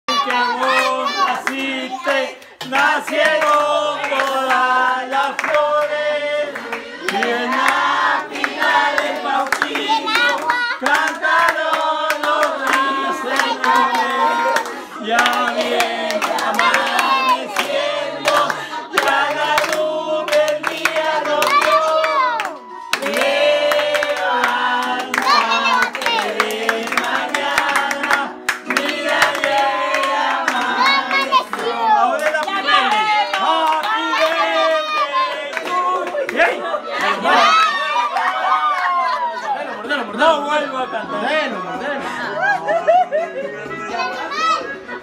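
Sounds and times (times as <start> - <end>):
group singing a celebration song: 0.1 - 45.0
hand clapping: 2.4 - 37.2.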